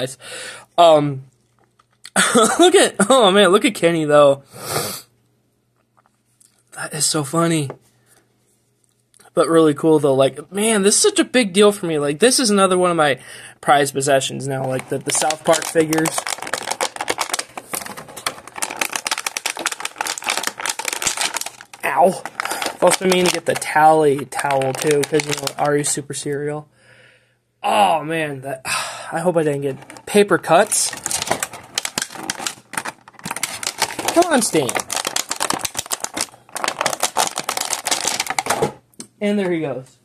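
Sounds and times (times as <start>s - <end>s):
plastic packaging crinkling: 14.0s - 26.1s, 29.5s - 38.7s.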